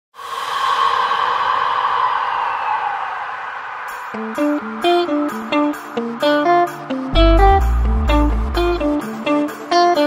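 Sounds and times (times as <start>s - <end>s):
airy whoosh sweep: 7.1s - 9.1s.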